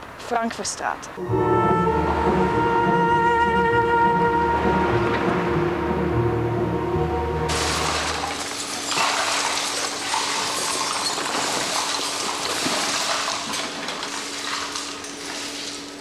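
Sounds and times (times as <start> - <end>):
glass and metal clinking: 7.5 - 12.9
brooms sweeping hard floor: 7.5 - 15.9.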